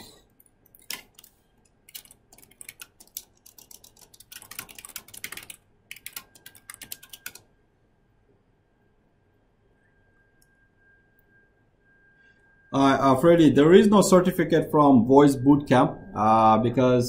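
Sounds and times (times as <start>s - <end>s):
keyboard typing: 0.4s - 7.5s
faint high tone: 9.6s - 17.0s.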